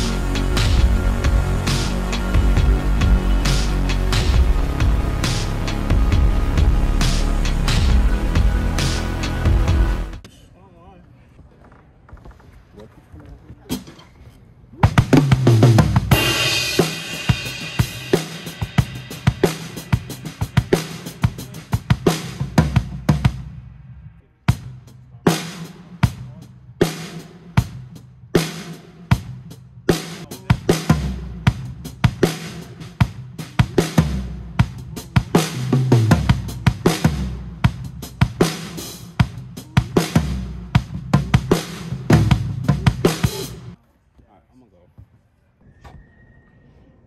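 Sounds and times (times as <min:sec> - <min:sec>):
drum kit playing fills: 0:00.0 - 0:10.2, 0:14.8 - 0:43.8.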